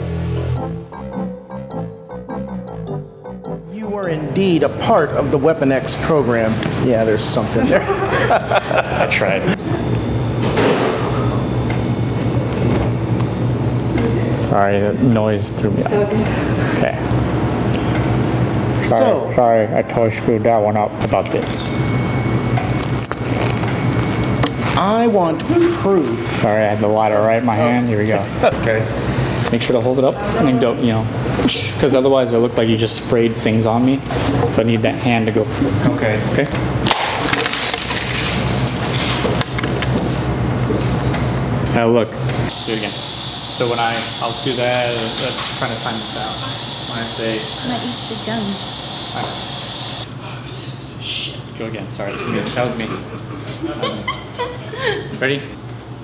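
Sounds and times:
low mechanical rumble with hum: 4.1 - 52.1
glass fragments tinkling: 22.8 - 23.6, 27.5 - 28.5.

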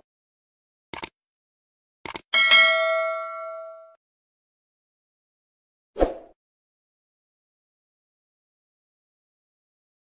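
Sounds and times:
notification bell ding: 2.4 - 4.0.

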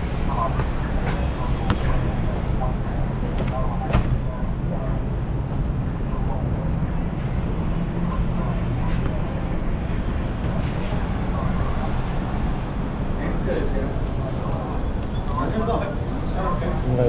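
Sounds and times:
faint voices: 0.0 - 17.0.

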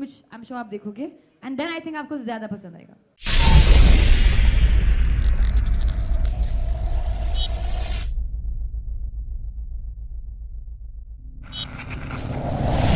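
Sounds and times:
deep rumble: 3.3 - 12.9
low held tone: 7.2 - 11.5.

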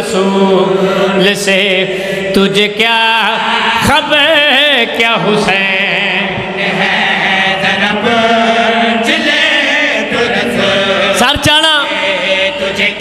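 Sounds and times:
men chanting into microphones: 0.0 - 13.0.

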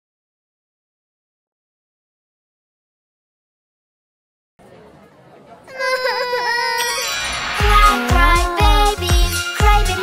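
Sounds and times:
cartoon babies crying: 5.7 - 7.1.

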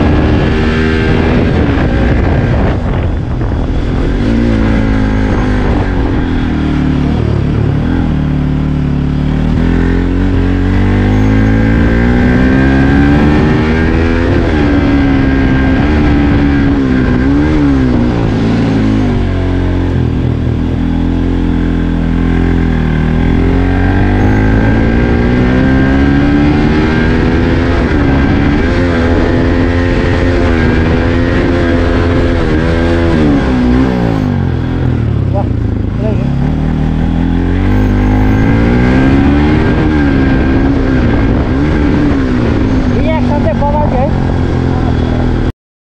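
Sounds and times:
motorcycle engine revving under load: 0.0 - 45.5.

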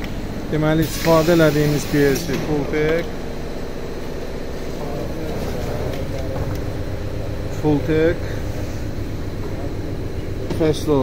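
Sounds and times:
constant machine tones: 0.0 - 11.0
filling machine humming: 0.0 - 11.0.

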